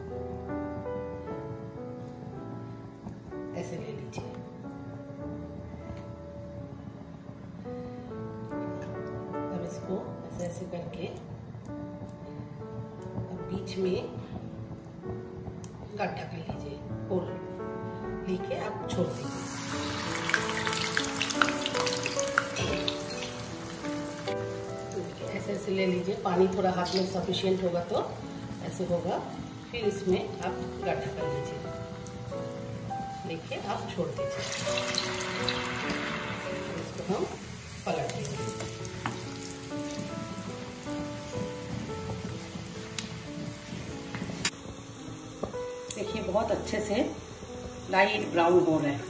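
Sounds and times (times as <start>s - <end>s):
background music of short notes: 0.0s - 49.0s
batter sizzling in hot oil: 18.5s - 49.0s.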